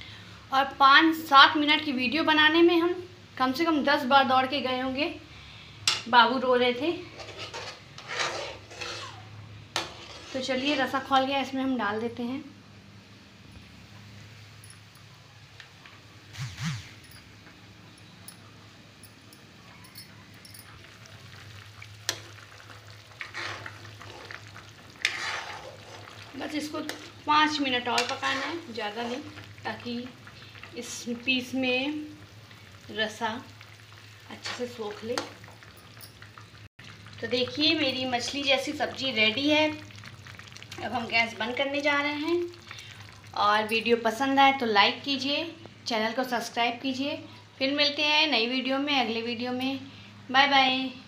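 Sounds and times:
spoon scraping pan: 7.0 - 11.0, 23.1 - 29.5, 34.3 - 35.8
gravy simmering faintly: 17.3 - 45.3.

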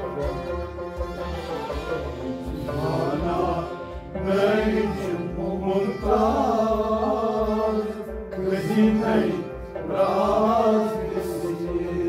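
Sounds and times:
sustained harmonium: 0.0 - 12.0
man singing melismatic line: 1.2 - 9.6.

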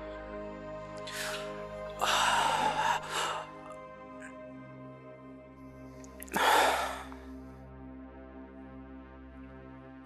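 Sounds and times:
music drone: 0.0 - 7.5
man gasping: 1.1 - 3.7, 6.2 - 7.2.

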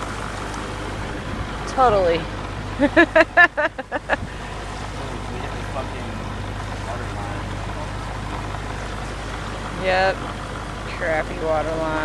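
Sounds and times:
boat engine hum: 0.0 - 12.0.

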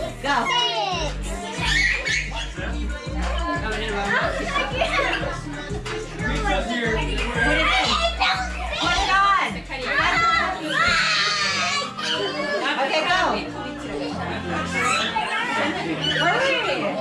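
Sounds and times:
background music: 0.0 - 17.0
children chattering: 0.0 - 17.0.

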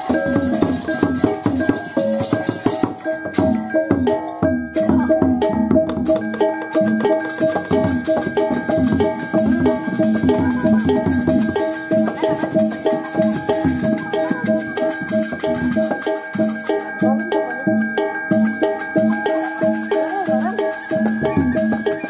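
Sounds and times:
drums: 0.0 - 22.0
metallophones ringing: 0.0 - 22.0
quick percussive strikes: 0.0 - 22.0.

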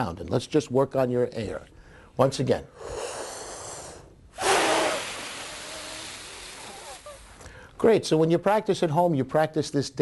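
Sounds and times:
breath drawn in: 2.7 - 7.8
air blown through lips: 2.8 - 7.6.

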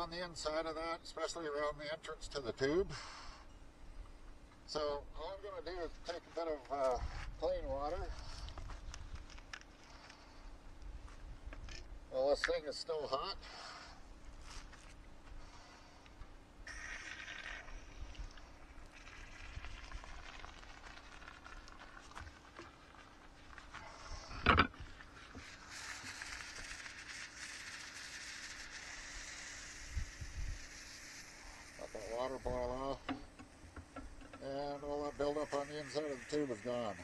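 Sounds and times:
steady hiss: 0.0 - 37.0
water sizzling in hot pan: 18.9 - 22.3, 25.4 - 32.5.

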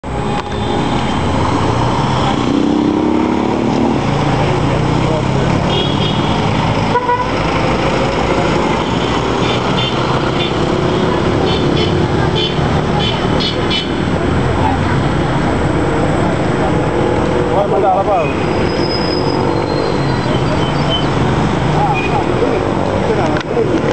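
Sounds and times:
vehicle engines passing: 0.0 - 23.9
people talking: 3.8 - 6.7, 8.0 - 18.5, 19.8 - 23.9
car horn toots: 5.7 - 6.3, 6.9 - 7.4.

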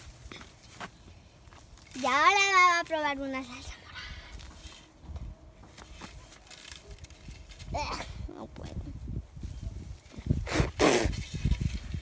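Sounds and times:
leaves rustling and crackling: 0.0 - 12.0.

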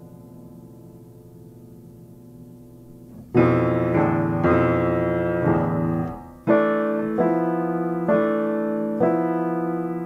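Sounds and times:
piano chords ringing: 0.0 - 10.0.

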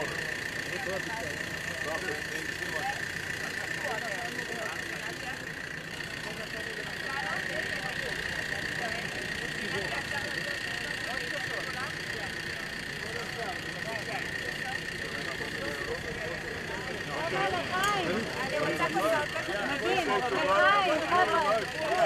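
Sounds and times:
engine hum with high whine: 0.0 - 22.0
people talking at once: 0.0 - 22.0.

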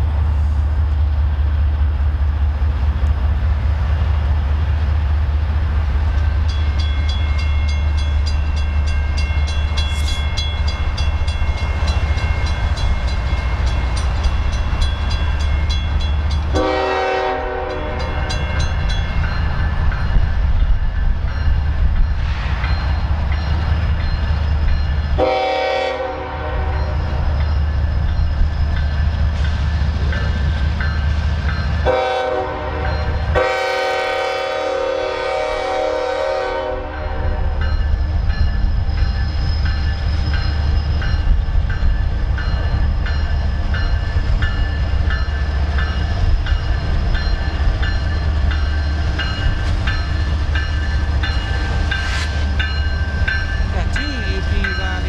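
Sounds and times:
locomotive engine rumble: 0.0 - 55.0
train air horn blasts: 16.5 - 18.3, 25.2 - 26.8, 31.8 - 37.5.

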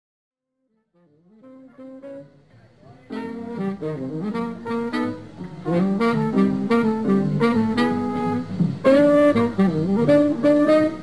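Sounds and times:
saxophone melodic lines: 0.8 - 11.0
jazz band playing: 1.3 - 11.0.

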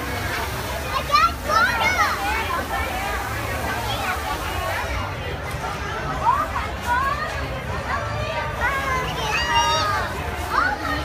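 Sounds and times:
children calling and squealing: 0.5 - 4.9, 6.1 - 11.0.

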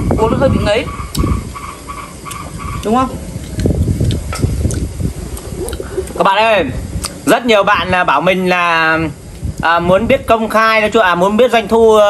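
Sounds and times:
man swallowing: 3.4 - 6.2, 7.0 - 7.2.

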